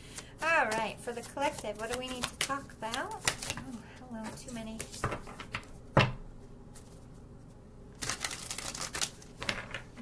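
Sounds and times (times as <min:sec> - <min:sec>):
cards being shuffled: 0:00.1 - 0:05.8, 0:08.0 - 0:10.0.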